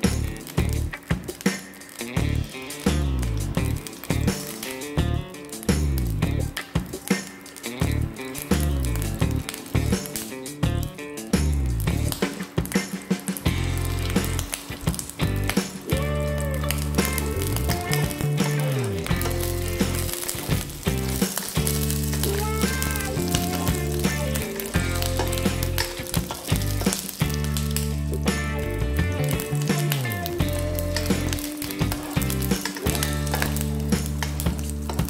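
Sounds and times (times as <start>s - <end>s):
background music with bass line: 0.0s - 7.0s, 7.6s - 35.0s
seeds sizzling in hot oil: 0.0s - 35.0s
metal spoon stirring in pan: 17.0s - 27.6s.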